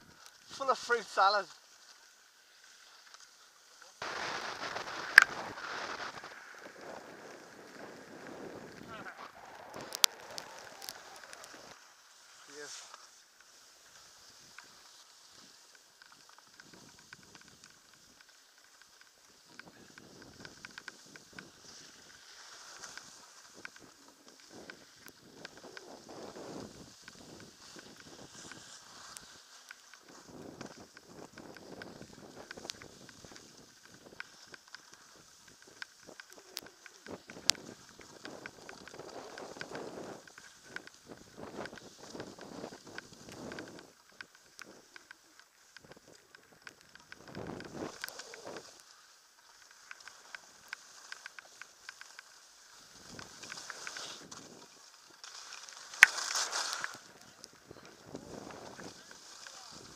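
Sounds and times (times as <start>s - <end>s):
skis carving over snow: 0.0s - 59.9s.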